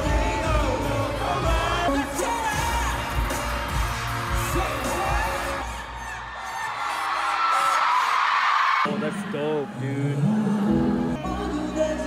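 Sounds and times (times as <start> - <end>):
pop song singing over heavy beat: 0.0 - 12.0.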